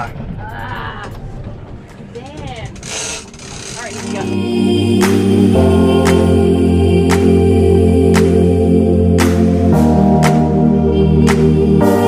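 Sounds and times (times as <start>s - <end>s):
boat engine: 0.0s - 8.5s
person's voice: 3.7s - 4.8s.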